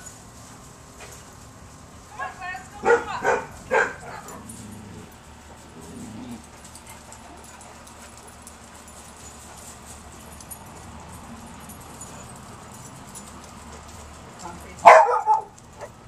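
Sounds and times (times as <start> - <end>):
low dog whimper: 4.0 - 7.6.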